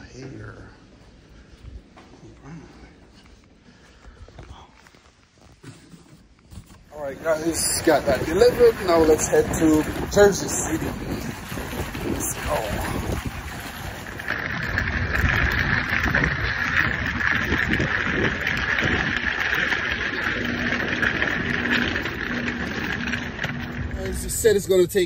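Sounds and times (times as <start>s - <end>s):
low rumbles: 6.8s - 25.0s
wind buffeting microphone: 6.9s - 25.0s.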